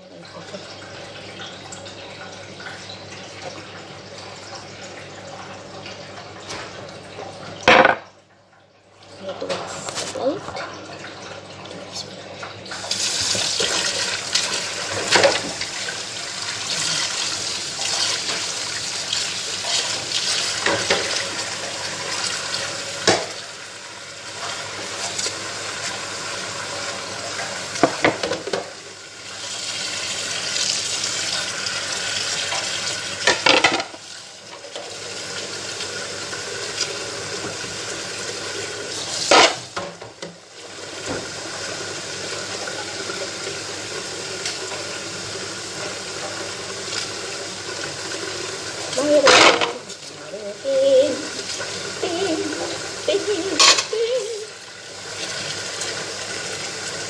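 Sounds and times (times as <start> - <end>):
tap water running into sink: 0.0 - 57.0
dishes clinking together: 49.2 - 49.8, 53.6 - 54.0.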